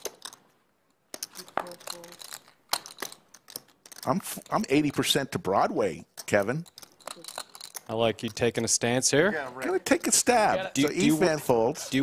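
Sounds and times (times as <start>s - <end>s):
poker chips clicking on table: 0.0s - 0.5s, 1.1s - 5.1s, 6.1s - 8.7s.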